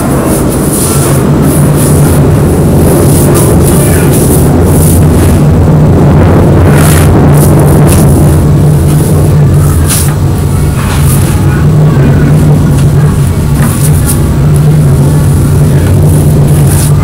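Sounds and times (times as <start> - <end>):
loud low hum: 0.0 - 17.0.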